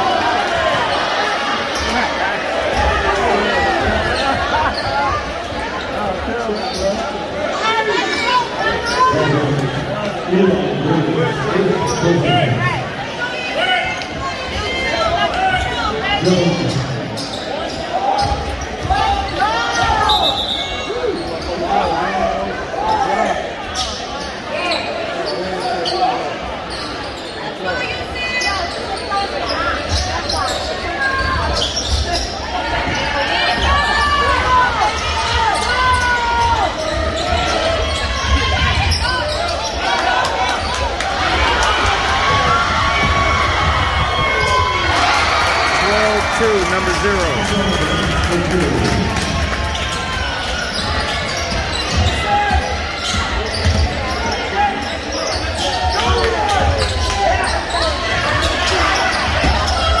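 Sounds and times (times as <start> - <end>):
voices of players and spectators: 0.0 - 60.0.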